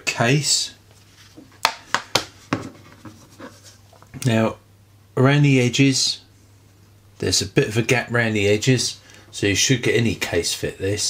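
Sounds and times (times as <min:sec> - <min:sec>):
phone set on a table: 0:01.3 - 0:04.0.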